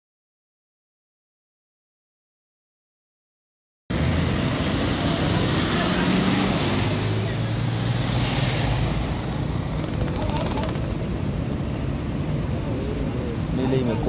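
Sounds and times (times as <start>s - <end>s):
rush of moving floodwater: 4.0s - 14.0s.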